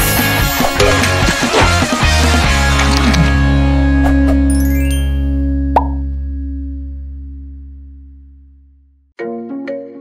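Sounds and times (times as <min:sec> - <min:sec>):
jingle low chord ringing: 0:04.4 - 0:06.7
short pop sound effect: 0:05.8 - 0:06.1.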